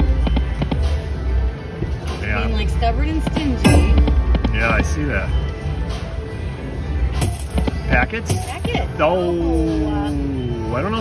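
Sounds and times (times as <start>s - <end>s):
slot machine electronic music: 3.6s - 5.3s.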